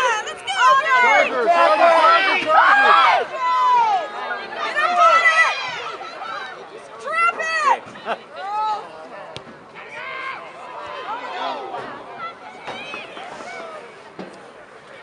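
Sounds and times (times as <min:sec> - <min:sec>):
voices shouting and calling out: 0:00.0 - 0:15.0.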